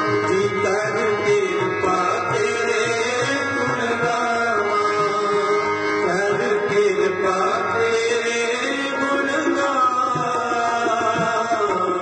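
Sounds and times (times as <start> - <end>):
harmoniums playing: 0.0 - 12.0
tabla playing: 0.0 - 12.0.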